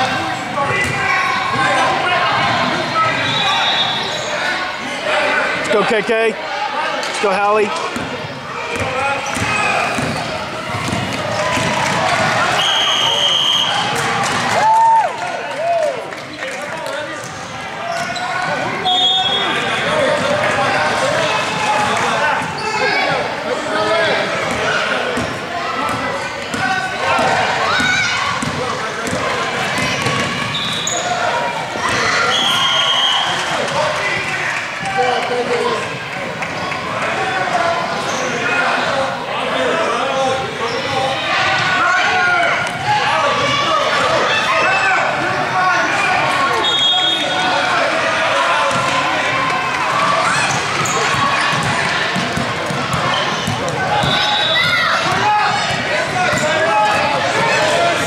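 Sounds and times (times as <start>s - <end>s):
echoing voices: 0.0s - 58.0s.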